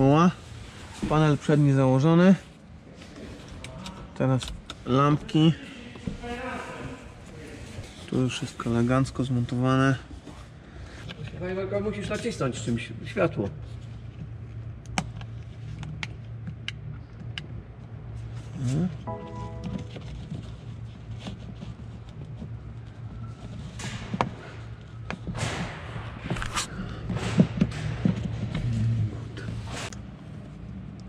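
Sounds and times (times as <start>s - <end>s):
steady low hum: 0.0s - 31.0s
brief tone: 19.1s - 20.4s.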